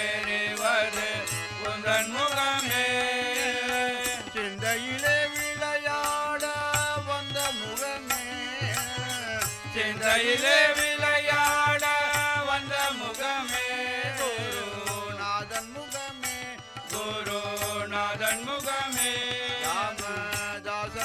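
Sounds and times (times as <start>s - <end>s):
group singing devotional refrain: 0.0s - 21.0s
harmonium tones: 0.0s - 21.0s
tabla: 0.0s - 21.0s.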